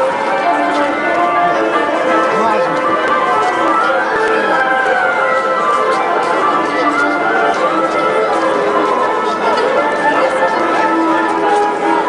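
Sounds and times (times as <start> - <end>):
background music: 0.0 - 12.0
crowd chatter: 0.0 - 12.0.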